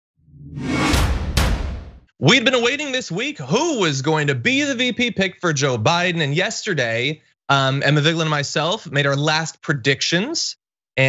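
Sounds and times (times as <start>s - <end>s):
whoosh: 0.2s - 2.1s
low rumble: 0.3s - 2.0s
sharp hits: 0.4s - 2.1s.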